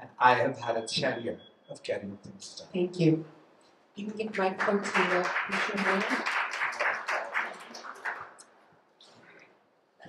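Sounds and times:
audience applauding: 0:04.2 - 0:08.4.

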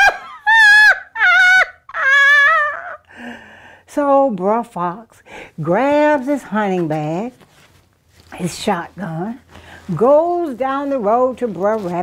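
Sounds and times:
woman laughing high-pitched: 0:00.0 - 0:03.1.

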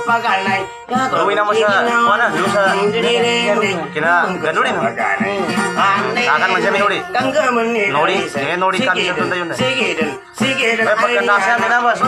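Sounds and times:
person singing ornamented melody: 0:00.0 - 0:12.0
plucked guitar: 0:00.0 - 0:12.0.

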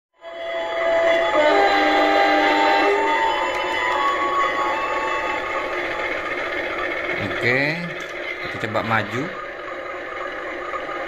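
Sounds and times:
diesel engine drone from speaker: 0:07.0 - 0:10.2.

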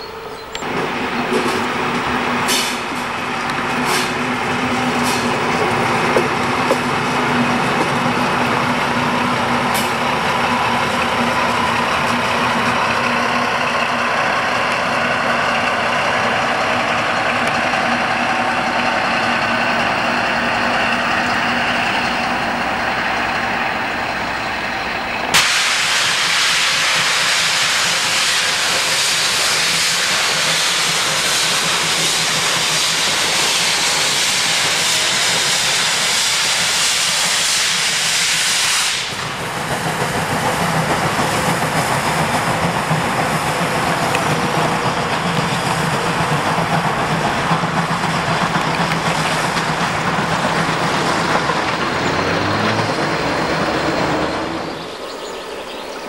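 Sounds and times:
diesel locomotive idling: 0:00.0 - 0:56.0
loud steam hiss: 0:00.0 - 0:56.0.

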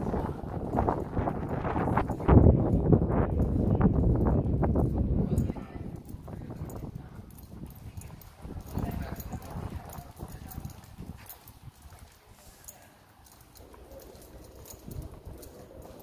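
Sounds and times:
wind rumbling on microphone: 0:00.0 - 0:12.5, 0:13.5 - 0:16.0
horse hooves on pavement: 0:00.0 - 0:16.0
voices of people: 0:05.0 - 0:16.0.

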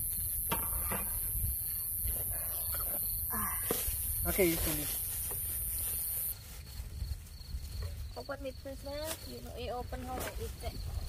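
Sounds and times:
high-pitched insect buzz: 0:00.0 - 0:06.4
cricket chirps: 0:00.0 - 0:11.0.

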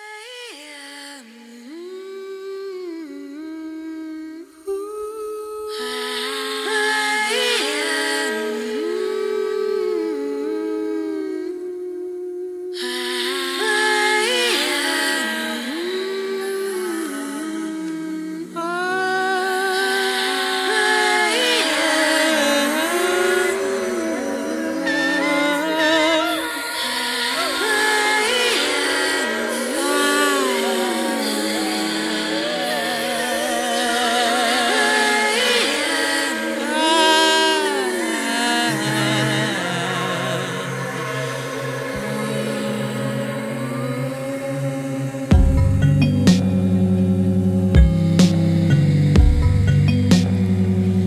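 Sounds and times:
woman humming in layered harmony: 0:00.0 - 0:51.0
woman singing sliding notes: 0:00.0 - 0:51.0
backing track music: 0:45.3 - 0:51.0.

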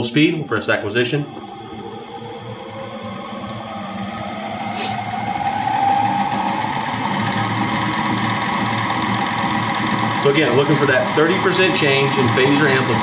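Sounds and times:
fan whirring: 0:00.0 - 0:13.0.

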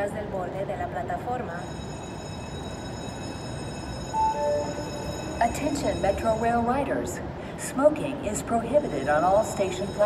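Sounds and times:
light-rail train running: 0:00.0 - 0:10.0
falling two-tone signal: 0:02.3 - 0:06.7.

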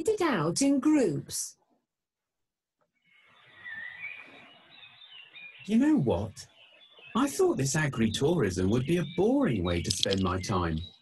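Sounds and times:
birds chirping: 0:03.0 - 0:11.0.

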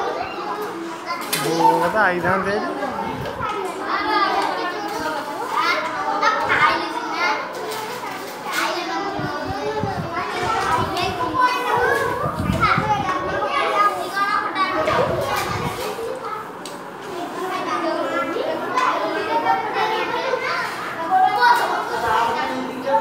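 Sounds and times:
children chattering babble: 0:00.0 - 0:23.0.

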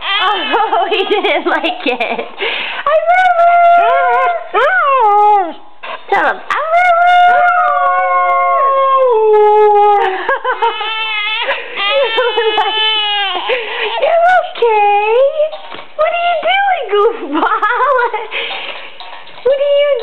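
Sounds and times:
baby crying: 0:00.0 - 0:01.1, 0:07.3 - 0:14.2.

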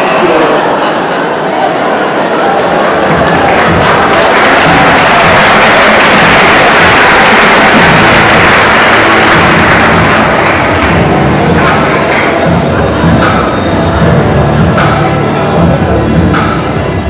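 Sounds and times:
audience applauding: 0:02.4 - 0:13.5
loud show music: 0:02.8 - 0:17.0.

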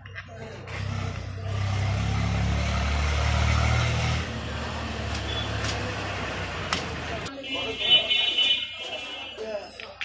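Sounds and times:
vehicle engine running loudly: 0:00.7 - 0:07.2.

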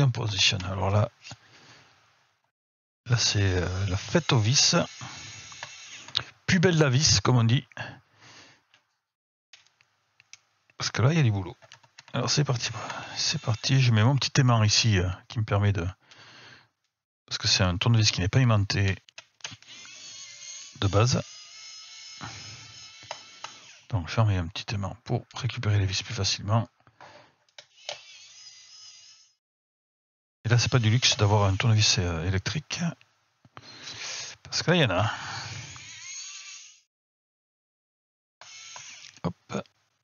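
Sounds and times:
electric screwdriver whine: 0:03.9 - 0:06.2, 0:19.5 - 0:23.9, 0:35.5 - 0:36.8, 0:38.4 - 0:39.2.

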